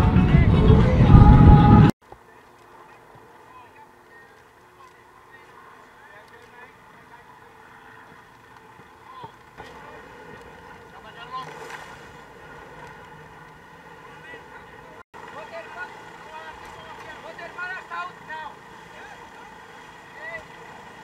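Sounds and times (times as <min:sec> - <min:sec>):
wind and water rushing past hull: 0:00.0 - 0:21.0
faint crew voices: 0:13.9 - 0:21.0.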